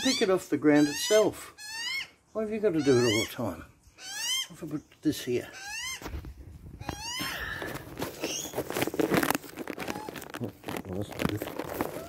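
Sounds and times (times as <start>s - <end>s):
young magpie squawking: 0.0s - 6.1s, 6.8s - 7.5s
rustling in grass and leaves: 4.5s - 12.0s.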